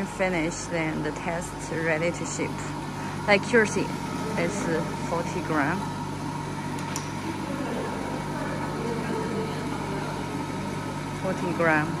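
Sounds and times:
machine electrical hum: 0.0s - 12.0s.

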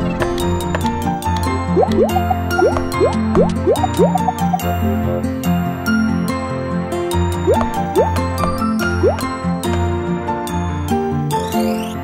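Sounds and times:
children's background music: 1.6s - 5.2s
rising cartoon bloops: 1.8s - 4.7s.

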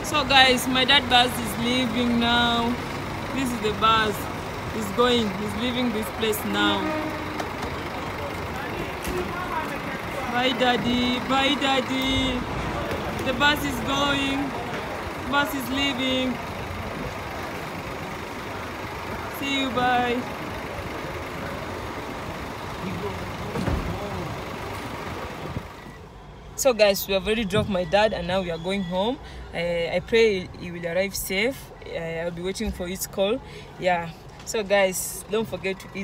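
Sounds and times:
faint voices: 0.0s - 26.0s
bus engine idling: 0.0s - 36.0s.

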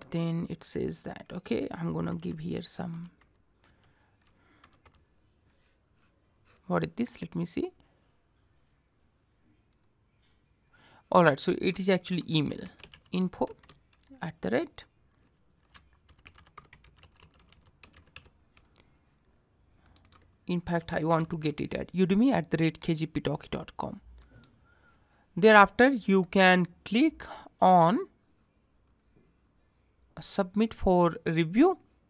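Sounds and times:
computer keyboard typing: 2.8s - 5.1s, 11.7s - 14.2s, 15.1s - 18.8s, 19.8s - 20.3s.

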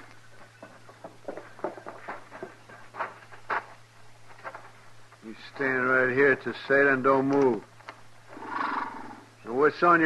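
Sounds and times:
footsteps and knocks: 0.0s - 5.2s
low recording hum: 0.0s - 10.0s.

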